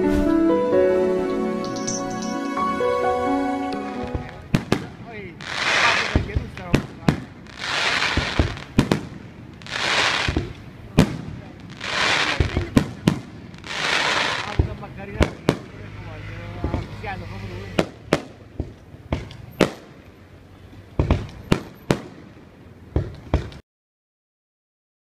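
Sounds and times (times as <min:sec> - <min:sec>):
music cue: 0:00.0 - 0:04.5
fireworks shell bursts: 0:01.6 - 0:02.9
fireworks hissing and crackling: 0:04.0 - 0:20.2, 0:20.8 - 0:23.6.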